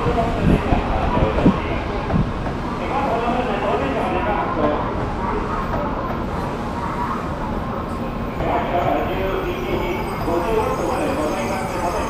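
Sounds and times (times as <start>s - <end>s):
indistinct voices: 0.0s - 12.0s
railway station rumble: 0.0s - 12.0s.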